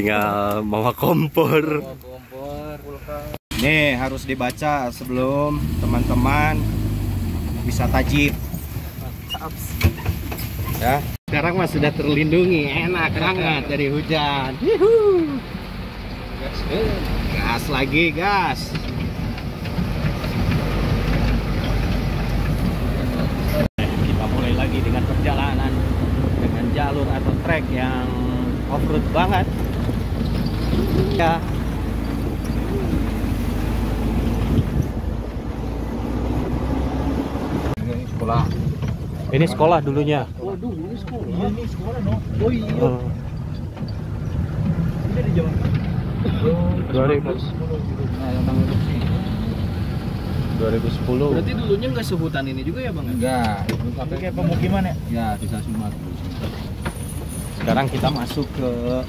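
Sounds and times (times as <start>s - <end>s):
engine low rumble: 0.0s - 59.0s.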